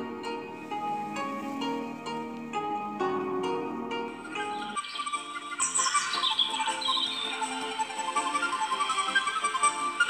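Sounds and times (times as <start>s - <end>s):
plucked string music: 0.0s - 10.0s
high chirping: 4.1s - 10.0s.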